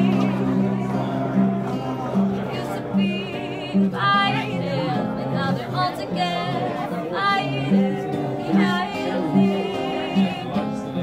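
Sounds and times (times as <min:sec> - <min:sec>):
acoustic guitar: 0:00.0 - 0:11.0
person singing: 0:00.0 - 0:11.0.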